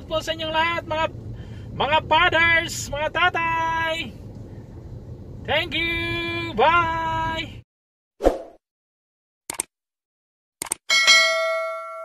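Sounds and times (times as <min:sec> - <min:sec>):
bright bell ding: 0:10.9 - 0:12.0.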